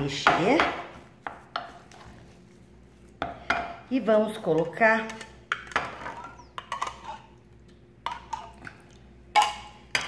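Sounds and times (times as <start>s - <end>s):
wooden spoon stirring mashed potato: 0.9s - 3.4s.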